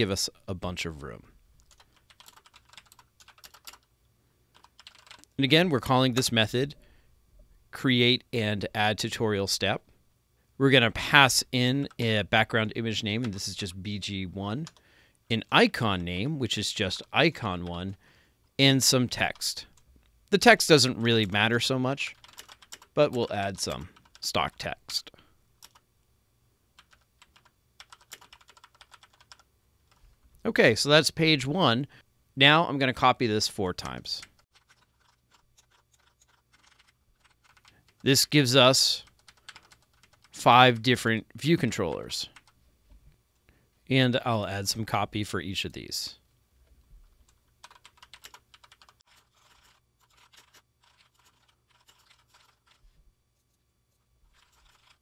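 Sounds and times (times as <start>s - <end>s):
typing on computer keyboard: 1.6s - 3.9s, 4.5s - 5.3s, 22.1s - 23.0s, 23.8s - 24.2s, 25.6s - 25.8s, 26.8s - 30.0s, 33.8s - 38.0s, 39.0s - 40.4s, 47.2s - 52.8s, 54.3s - 55.0s.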